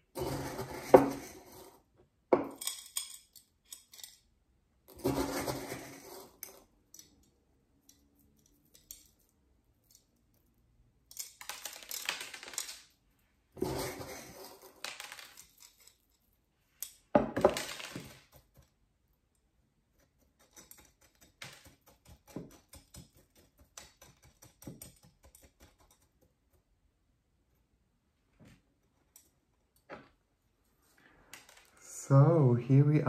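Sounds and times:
stones clinking and rattling: 11.1s - 13.0s, 13.6s - 18.7s.

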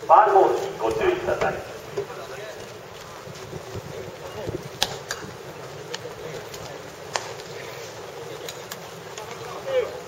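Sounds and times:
ballpark ambience: 0.0s - 10.0s.

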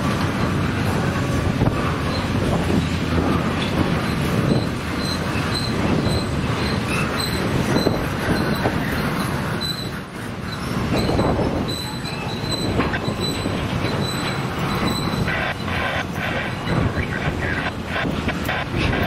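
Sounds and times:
freight train wheels rumbling: 0.0s - 19.0s
high-pitched wheel squeals: 1.8s - 19.0s.

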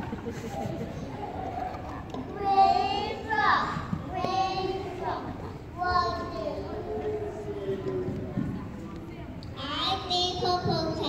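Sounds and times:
children's voices reciting: 1.1s - 8.4s, 9.6s - 11.0s.

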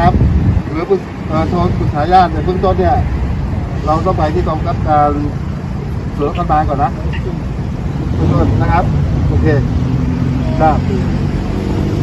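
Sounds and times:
vehicle engine humming: 0.0s - 12.0s.

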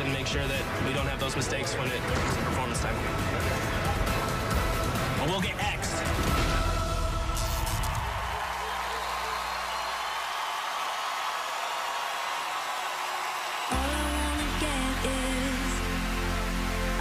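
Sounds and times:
audience cheering and applauding: 7.0s - 17.0s
loud music with heavy bass: 13.7s - 17.0s.

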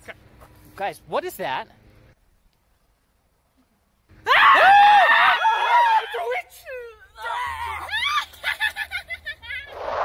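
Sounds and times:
people screaming in fright: 4.2s - 6.4s, 7.2s - 8.4s.

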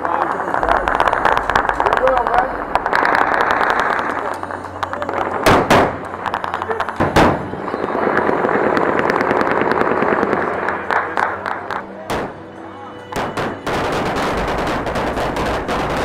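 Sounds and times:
voices: 0.0s - 5.4s
dense crackling: 0.0s - 12.5s
loud bangs: 0.0s - 12.5s.

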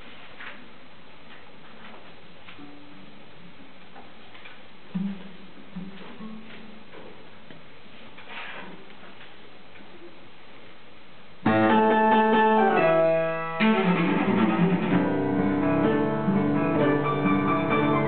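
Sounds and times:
plucked cello notes: 11.5s - 18.0s.

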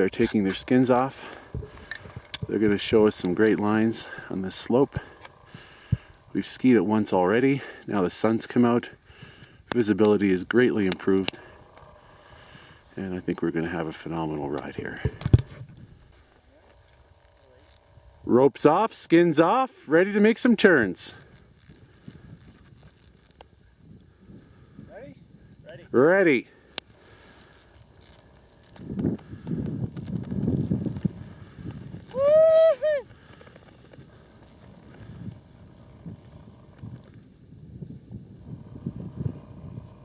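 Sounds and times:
person shouting a whoop: 32.1s - 33.1s.

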